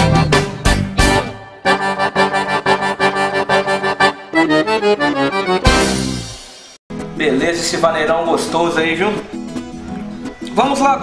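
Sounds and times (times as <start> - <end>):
band with drum hits: 0.0 - 1.4, 5.6 - 7.2
accordion fast repeated notes: 0.0 - 6.7.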